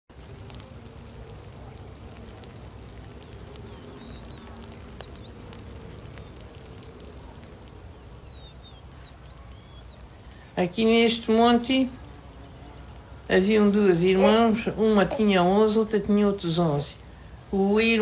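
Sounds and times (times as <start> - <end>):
embers crackling: 0.1 - 18.0
low rumble of fire: 0.1 - 18.0
faint high chirps: 1.4 - 10.6
fly buzzing: 14.0 - 15.6.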